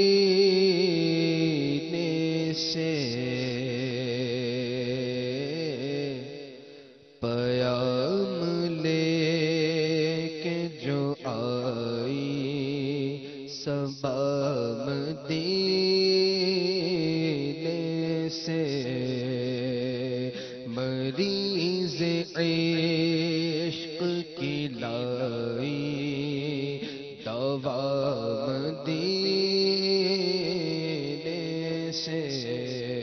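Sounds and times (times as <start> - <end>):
man singing into a microphone: 0.0 - 33.0.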